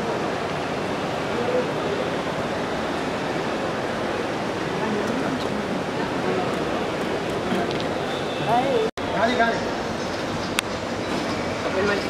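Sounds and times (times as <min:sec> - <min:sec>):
crowd noise with indistinct voices: 0:00.0 - 0:12.0.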